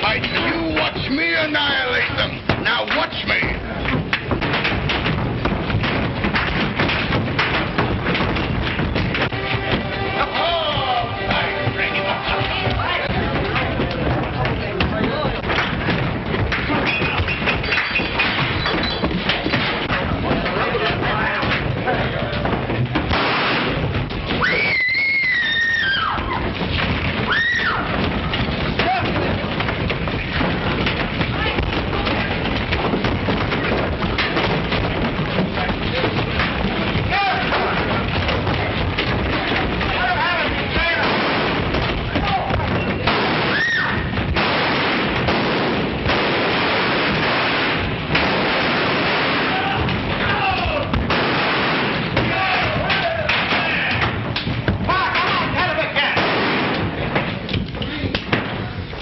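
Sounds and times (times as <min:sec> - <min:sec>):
scuffling and thuds: 0:00.0 - 0:59.0.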